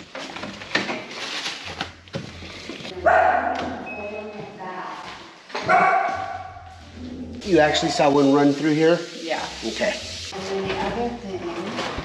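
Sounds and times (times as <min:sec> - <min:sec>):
small dog barking with echo: 0:03.0 - 0:03.8, 0:05.7 - 0:06.6.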